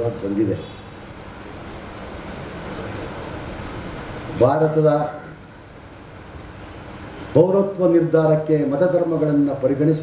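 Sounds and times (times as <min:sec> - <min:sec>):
rushing hall background noise: 0:00.0 - 0:10.0.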